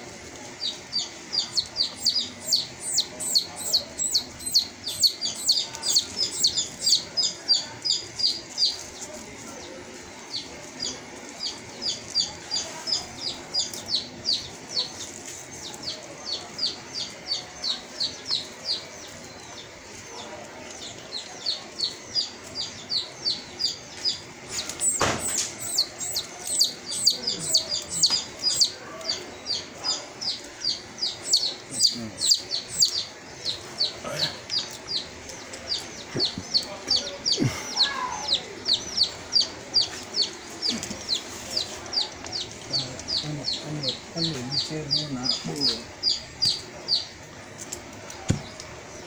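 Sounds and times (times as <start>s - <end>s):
bird chirping: 0.6s - 9.1s, 10.3s - 49.0s.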